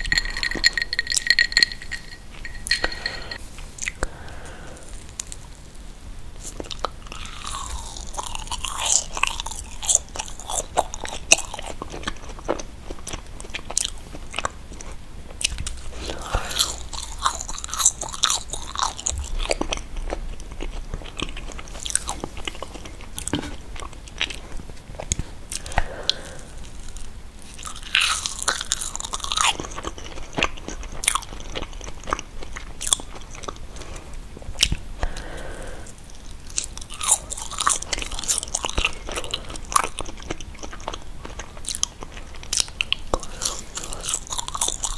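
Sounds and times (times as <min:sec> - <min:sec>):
chewing marshmallows: 0:00.0 - 0:44.9.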